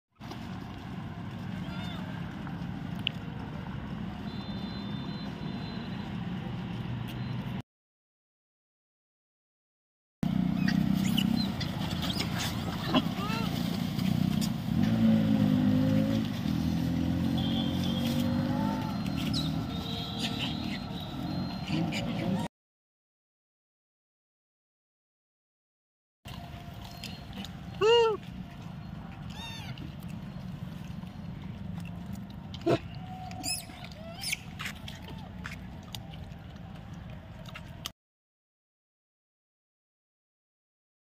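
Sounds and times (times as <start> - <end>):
vehicle engine running: 10.2 - 21.8.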